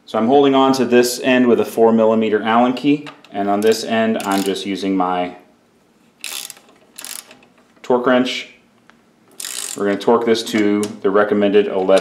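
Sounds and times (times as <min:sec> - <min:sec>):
torque wrench ratcheting clicks: 0:03.6 - 0:04.6, 0:06.2 - 0:07.6, 0:09.3 - 0:10.8.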